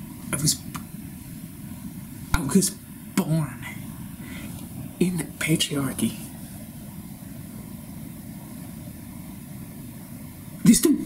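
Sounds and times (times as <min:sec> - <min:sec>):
faint hiss: 0:00.0 - 0:11.0
low background rumble: 0:00.0 - 0:11.0
person speaking: 0:00.2 - 0:00.9, 0:02.3 - 0:04.0, 0:04.6 - 0:06.4.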